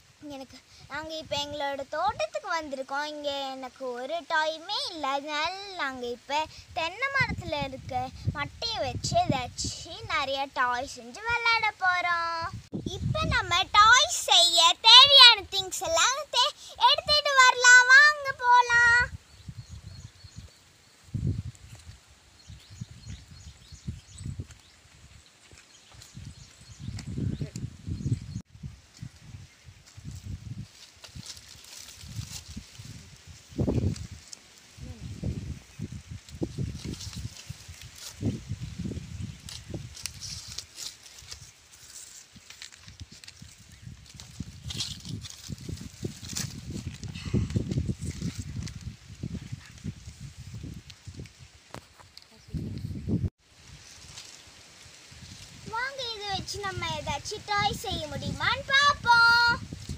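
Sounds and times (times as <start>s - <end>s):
girl speaking in sing-song: 0.2s - 19.1s, 55.6s - 59.7s
faint microphone rumbles: 4.9s - 40.6s, 43.0s - 51.2s
palm leaves rustling and crackling: 23.4s - 52.4s, 53.4s - 59.9s.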